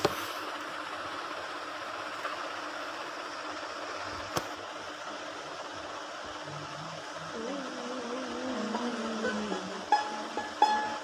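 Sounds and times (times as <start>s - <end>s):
steady hiss: 0.0s - 11.0s
low wavering held note: 7.3s - 11.0s
plucked string note: 8.1s - 11.0s.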